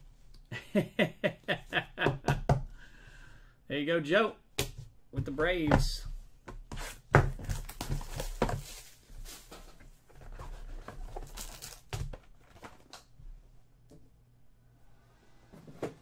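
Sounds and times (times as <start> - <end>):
foil pack crinkling: 11.1 - 13.0.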